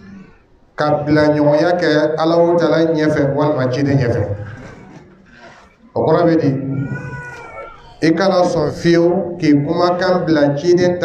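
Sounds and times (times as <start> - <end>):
man speaking through microphone: 0.0 - 4.9, 5.8 - 11.0.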